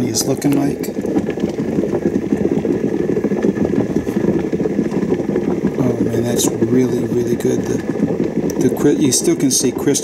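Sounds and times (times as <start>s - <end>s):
water simmering on a stove: 0.0s - 10.0s.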